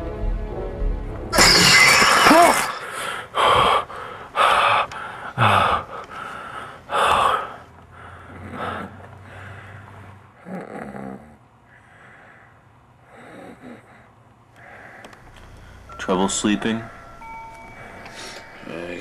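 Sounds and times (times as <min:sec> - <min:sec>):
heavy breaths: 0:02.8 - 0:10.4, 0:11.6 - 0:16.0, 0:16.9 - 0:19.0.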